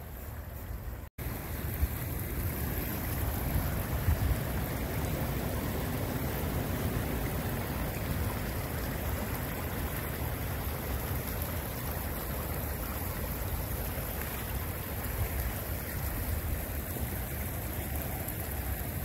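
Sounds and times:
creek water running over stones: 0:00.0 - 0:19.0.

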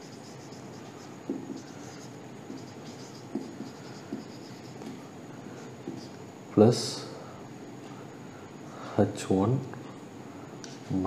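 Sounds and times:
marker writing on whiteboard: 0:00.0 - 0:05.0, 0:05.8 - 0:06.2.

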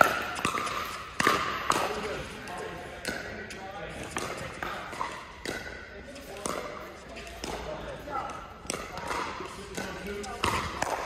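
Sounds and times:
paddles striking balls: 0:00.0 - 0:11.0.

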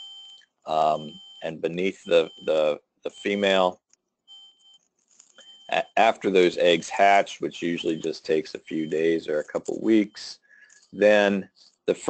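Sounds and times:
faint high-pitched tone: 0:00.0 - 0:03.7, 0:05.4 - 0:10.3
man speaking: 0:00.7 - 0:03.8, 0:05.7 - 0:10.4, 0:11.0 - 0:12.0.

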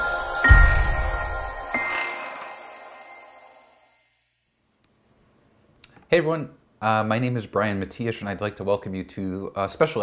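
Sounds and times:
chime-like music note: 0:00.0 - 0:03.8.

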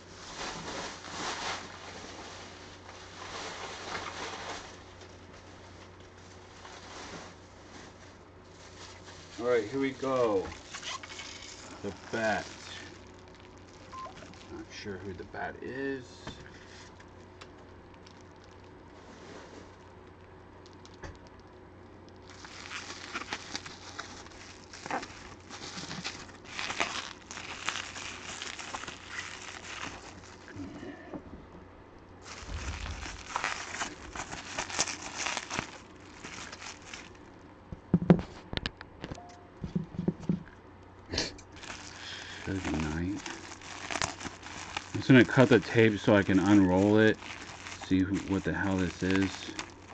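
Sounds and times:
bubble wrap crinkling: 0:00.0 - 0:30.8, 0:32.2 - 0:37.5, 0:41.5 - 0:49.9.

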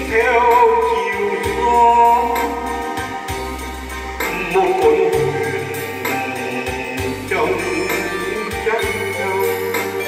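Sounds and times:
man singing through microphone: 0:00.0 - 0:03.4, 0:04.2 - 0:10.0
electronic keyboard chords: 0:00.0 - 0:10.0
steady drum beat: 0:00.0 - 0:10.0.

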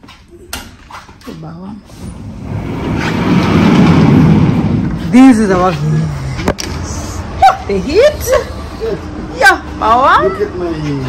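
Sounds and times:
wind rumbling on microphone: 0:02.1 - 0:07.0.

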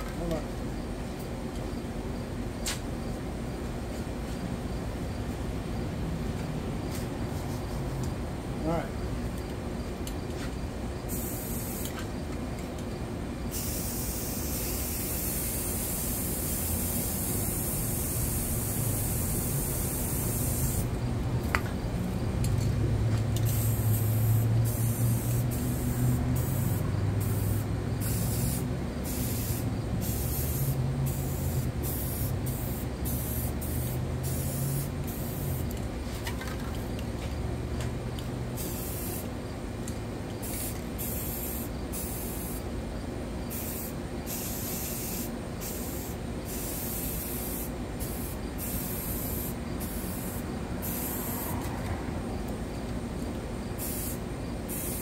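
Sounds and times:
spray paint cans hissing: 0:10.3 - 0:12.2, 0:13.5 - 0:22.6, 0:23.2 - 0:37.0, 0:38.5 - 0:39.4, 0:40.3 - 0:42.7, 0:43.5 - 0:51.8, 0:53.8 - 0:55.0.

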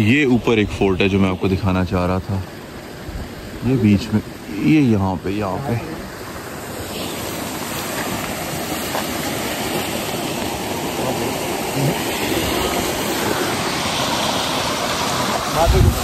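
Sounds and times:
stream water flowing: 0:00.0 - 0:16.0.

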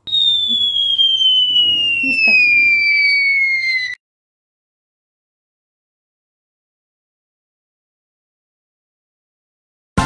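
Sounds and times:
descending cartoon whistle: 0:00.0 - 0:04.0.

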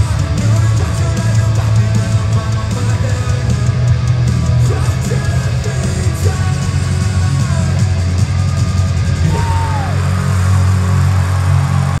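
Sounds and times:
live heavy rock band: 0:00.0 - 0:12.0.

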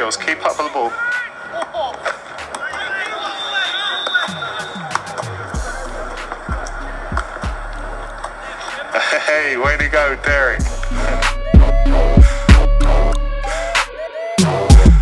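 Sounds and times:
faint voices: 0:00.0 - 0:11.4
hip-hop beat with deep bass: 0:00.6 - 0:15.0.

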